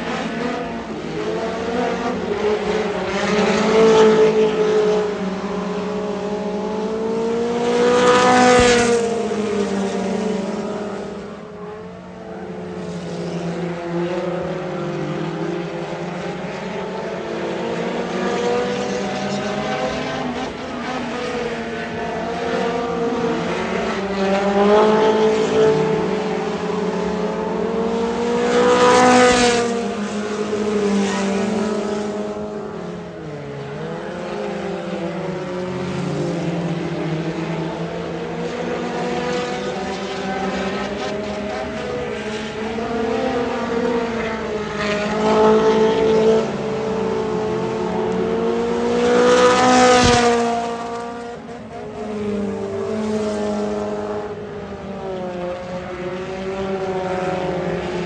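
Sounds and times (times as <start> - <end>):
stock car engines racing: 0.0 - 58.0.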